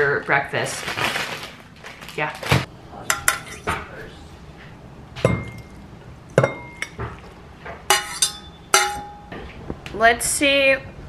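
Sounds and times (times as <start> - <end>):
metal clinking on ceramic bowl: 3.1 - 3.8, 5.2 - 5.8, 6.4 - 7.2, 7.9 - 9.3.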